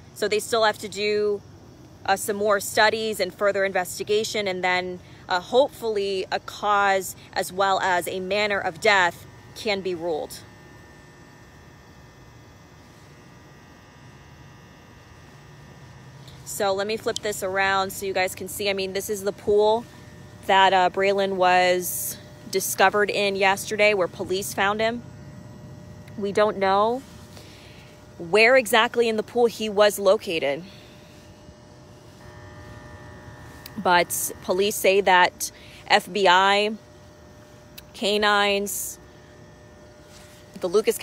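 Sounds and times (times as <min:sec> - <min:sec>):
faint steady whine: 0:00.0 - 0:41.0
steady low hum: 0:00.0 - 0:41.0.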